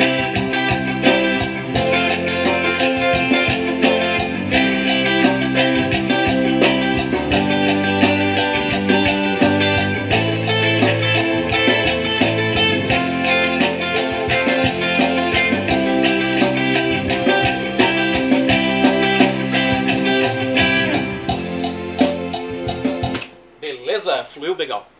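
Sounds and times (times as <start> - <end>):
backing track with bass and percussion: 0.0 - 23.4
electric guitar funk chords: 0.0 - 23.5.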